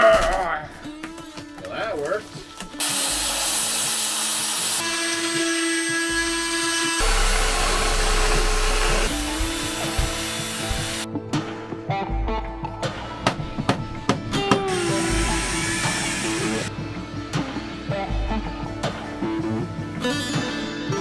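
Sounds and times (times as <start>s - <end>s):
belt sander on wood: 2.8s - 11.0s, 14.7s - 16.7s
power tools working wood: 2.8s - 11.1s, 14.7s - 16.7s.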